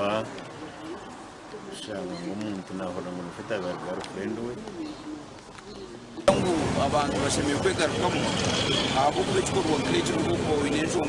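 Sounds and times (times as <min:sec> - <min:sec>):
man talking: 0:00.0 - 0:00.4, 0:01.6 - 0:04.7, 0:06.3 - 0:11.0.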